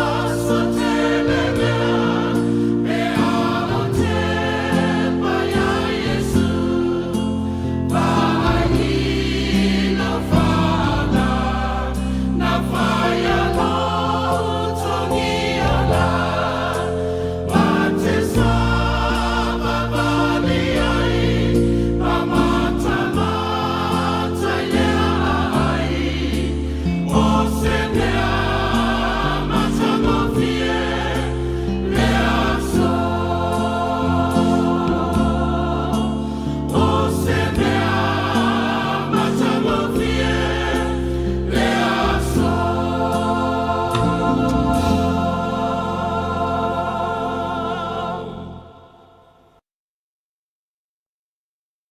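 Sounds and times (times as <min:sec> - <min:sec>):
church choir singing a hymn: 0:00.0 - 0:49.6.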